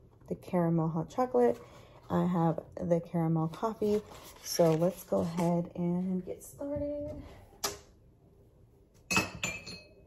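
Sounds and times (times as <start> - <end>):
dishware clinking: 9.1 - 10.0.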